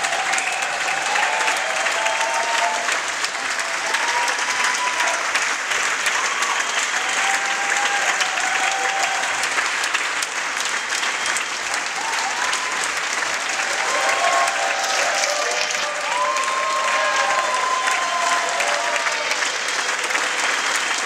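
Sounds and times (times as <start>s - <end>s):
audience applauding: 0.0s - 21.0s.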